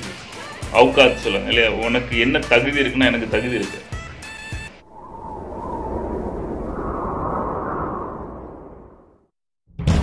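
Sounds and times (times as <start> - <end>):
deep rumbling whoosh: 4.8 - 9.3.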